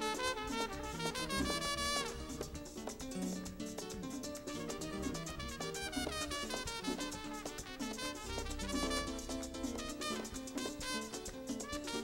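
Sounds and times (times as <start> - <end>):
trumpet: 0.0 - 2.5, 4.4 - 12.0
merengue band playing: 0.0 - 12.0.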